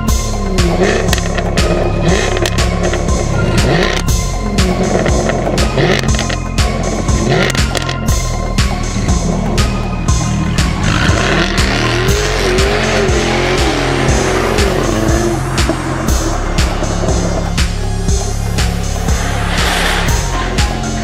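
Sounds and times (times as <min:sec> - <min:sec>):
background music with beat: 0:00.0 - 0:21.0
car engine revving: 0:00.0 - 0:21.0.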